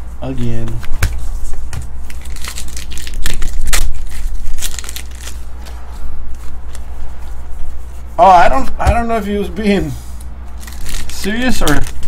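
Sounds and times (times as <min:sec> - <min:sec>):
wrapper crinkling and tearing: 0:02.1 - 0:05.5, 0:10.6 - 0:12.0.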